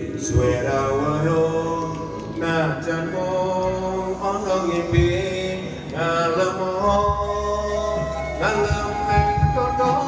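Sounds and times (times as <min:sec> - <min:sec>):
live musical accompaniment: 0:00.0 - 0:10.0
man singing through microphone: 0:00.0 - 0:10.0.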